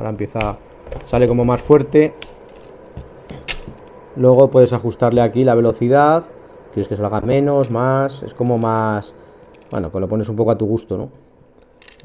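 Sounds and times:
air purifier fan whooshing: 0.0s - 12.0s.

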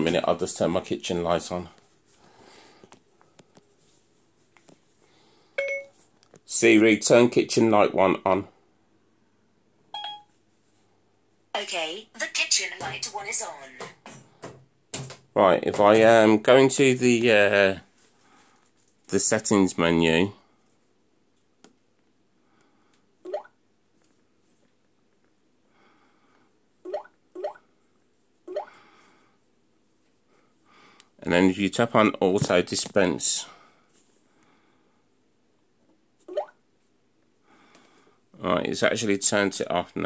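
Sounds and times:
short electronic beep: 10.0s - 10.3s
rising button-press tones: 36.3s - 36.5s.

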